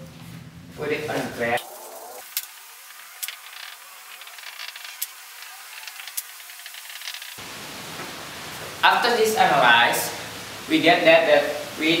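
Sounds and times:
steady hiss: 1.1s - 12.0s
marker scratching and squeaking: 3.2s - 7.4s.

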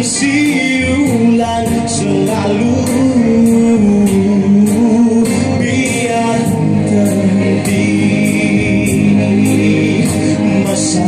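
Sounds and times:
backing music: 0.0s - 11.0s
man singing through pa system: 0.0s - 11.0s.

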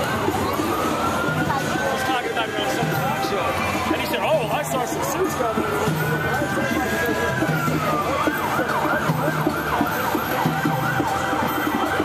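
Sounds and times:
emergency vehicle siren: 0.0s - 12.0s
street crowd noise: 0.0s - 12.0s.

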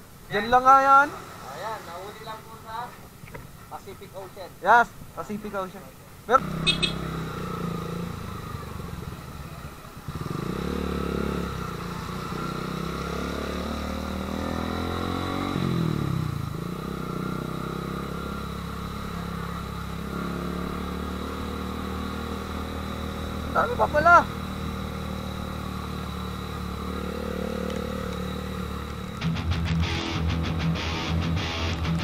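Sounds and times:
motorcycle engine: 6.3s - 32.0s.

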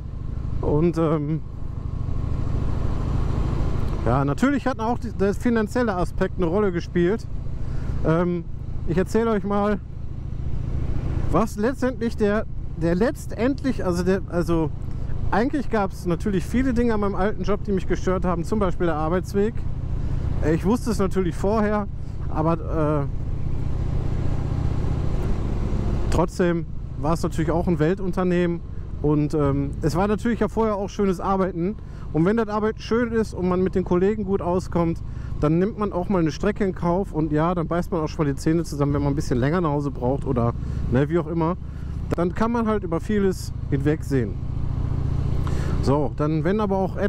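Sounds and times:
motorcycle engine running: 0.0s - 47.0s
wind and road noise: 0.0s - 47.0s.

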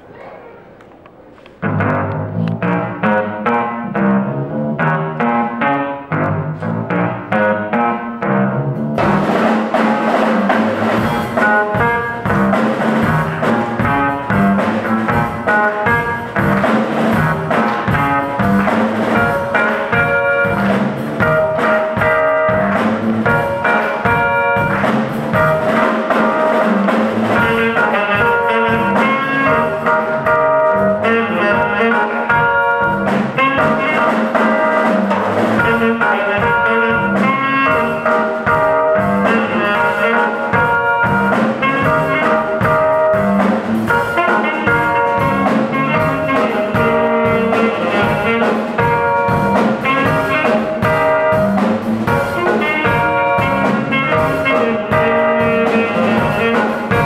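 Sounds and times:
saxophone playing jazzy melody: 1.6s - 57.0s
drum beat: 9.0s - 57.0s.

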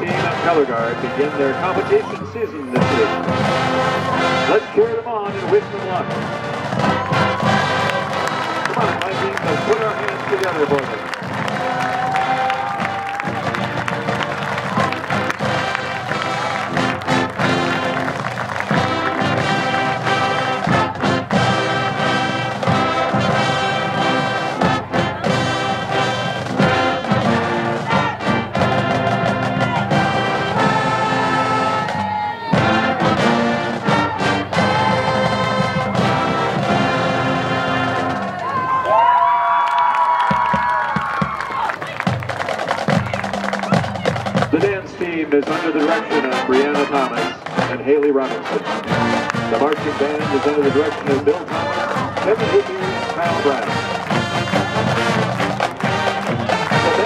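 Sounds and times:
marching band playing: 0.0s - 57.0s.

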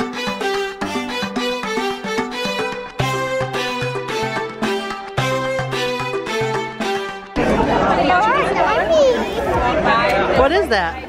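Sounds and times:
music: 0.0s - 8.6s
crowd chatter: 6.5s - 11.0s
child's high-pitched voice: 8.3s - 9.5s.

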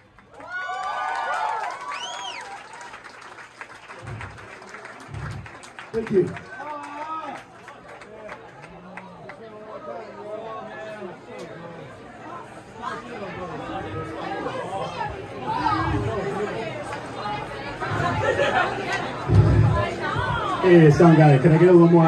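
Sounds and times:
crowd chatter: 3.5s - 22.0s
low thumps: 19.2s - 20.6s.

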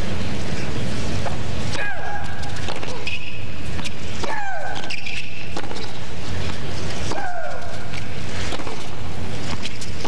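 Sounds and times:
racket hitting ball: 2.5s - 6.0s, 7.1s - 10.0s.

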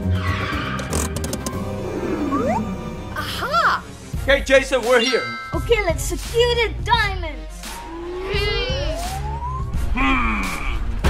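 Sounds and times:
background music with low beat: 4.1s - 11.0s.

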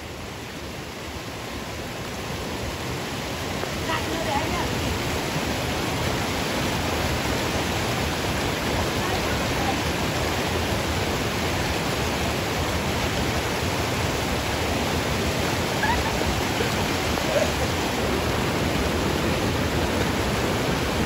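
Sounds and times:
waterfall pouring into a pool: 0.0s - 21.0s.

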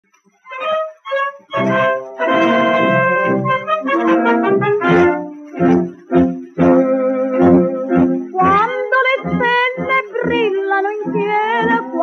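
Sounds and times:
small orchestra playing: 0.5s - 12.0s.

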